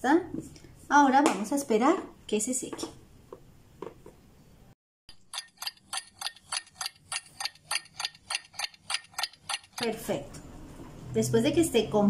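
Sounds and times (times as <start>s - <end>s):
clock ticking: 5.1s - 9.9s.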